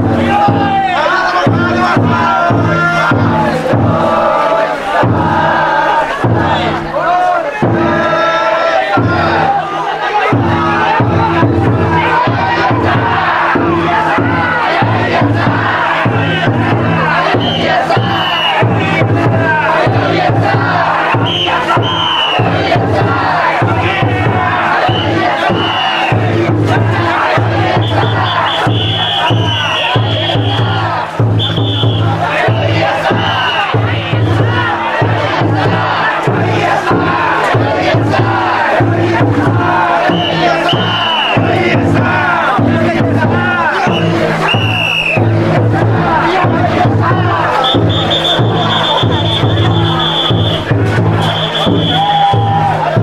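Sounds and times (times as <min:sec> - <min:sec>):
crowd chanting shouts: 0:00.0 - 0:53.0
drum beaten in steady rhythm: 0:00.0 - 0:53.0.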